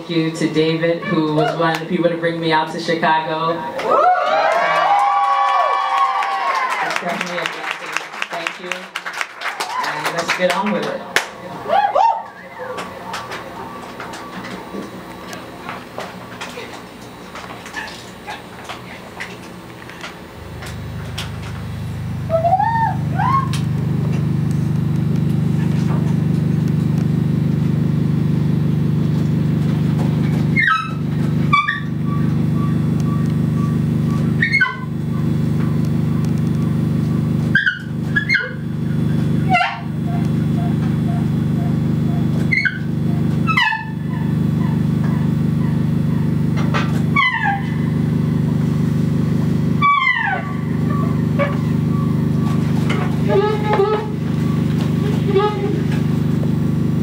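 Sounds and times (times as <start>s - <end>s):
low electronic drone: 11.0s - 57.0s.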